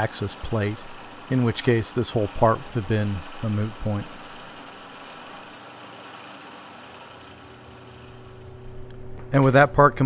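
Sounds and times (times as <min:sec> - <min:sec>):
shop machinery humming: 0:00.0 - 0:10.0
low steady hum: 0:07.2 - 0:10.0.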